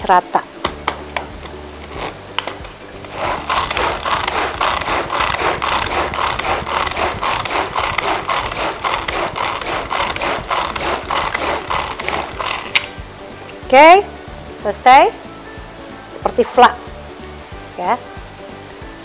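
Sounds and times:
pull-cord chopper ratcheting clatter: 1.9 - 13.0.

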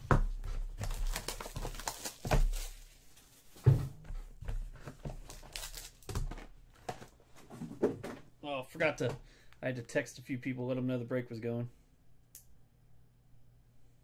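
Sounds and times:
foil pack rustling: 0.6 - 3.7, 4.6 - 7.2.

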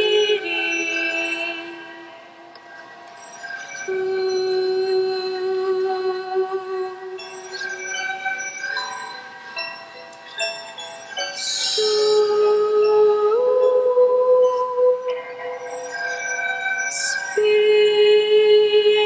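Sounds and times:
slow music with sustained notes: 0.0 - 19.0.

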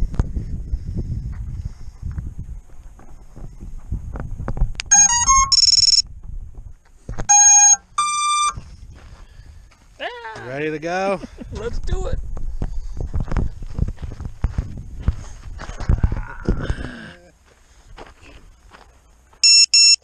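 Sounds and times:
short electronic beeps: 4.8 - 6.0, 7.3 - 8.6, 19.4 - 20.0
long steady beeps: 4.8 - 6.1, 7.3 - 8.8, 19.4 - 20.0.

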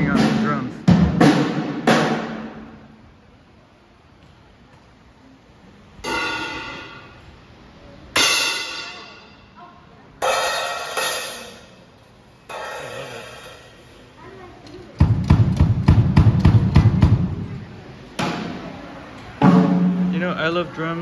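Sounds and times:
fast run of drum hits: 0.0 - 2.8, 15.0 - 17.5
cymbal crashes: 6.0 - 7.2, 8.2 - 9.4.

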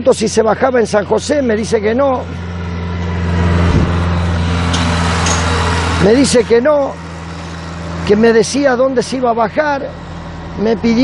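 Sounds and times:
tractor engine drone: 0.0 - 11.0.

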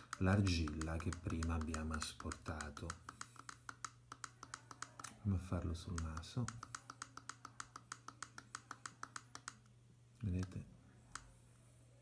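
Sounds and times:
computer mouse button clicking: 0.0 - 5.2, 5.9 - 9.7.

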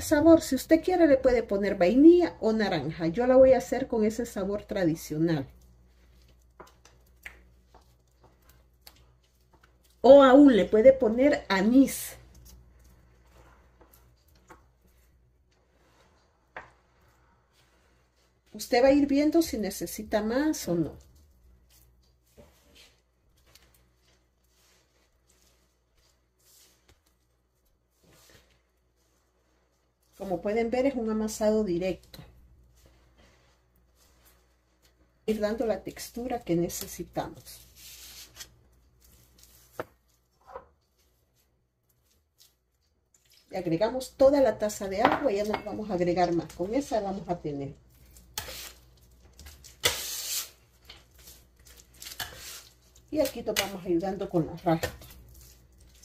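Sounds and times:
dough squishing and rustling: 0.0 - 56.0
metal scraper scraping dough: 48.4 - 48.8, 49.6 - 50.6, 52.1 - 52.8.

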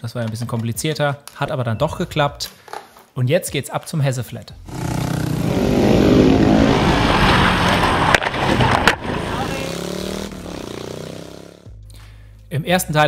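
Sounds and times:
motorcycles passing by: 4.7 - 11.7.

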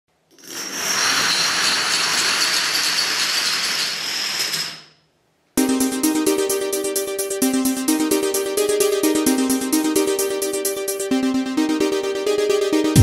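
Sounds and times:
dominoes toppling clatter: 0.3 - 4.8
electronic music with steady beat: 5.6 - 13.0.

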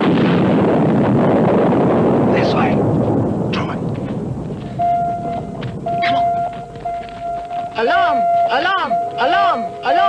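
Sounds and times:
explosion rumble: 0.0 - 9.1
high electronic tone: 4.8 - 10.0.

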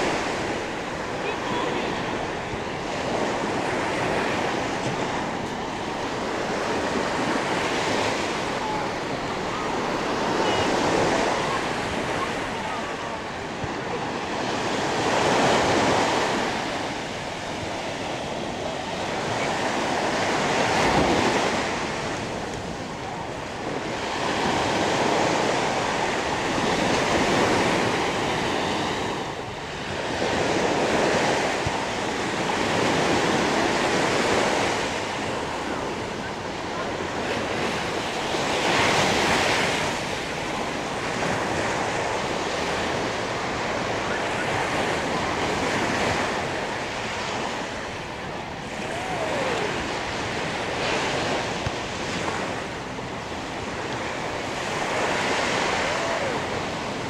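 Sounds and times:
small waves breaking on beach: 0.0 - 57.0.

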